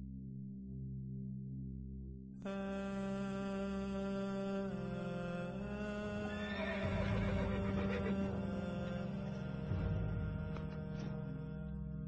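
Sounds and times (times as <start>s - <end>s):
droning music: 0.0s - 12.0s
horse whinnying: 6.4s - 8.1s.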